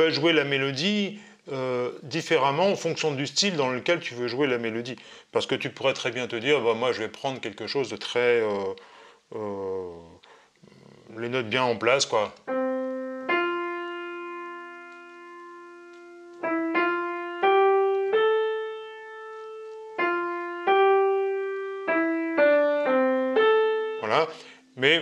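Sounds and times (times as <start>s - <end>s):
piano melody: 12.4s - 24.4s.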